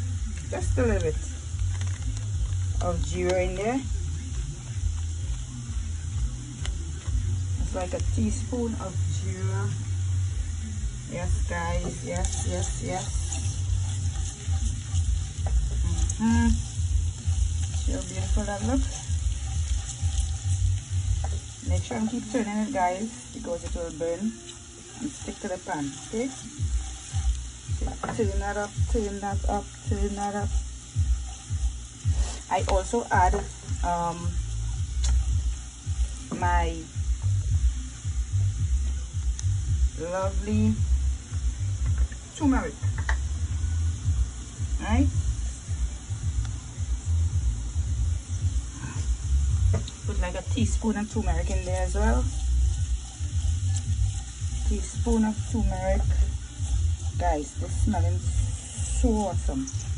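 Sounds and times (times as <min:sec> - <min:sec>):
low rumble: 0:00.0 - 0:32.1, 0:32.7 - 0:59.9
onions sizzling in oil: 0:00.0 - 0:59.9
spatula stirring in pan: 0:10.9 - 0:37.3, 0:48.3 - 0:59.9.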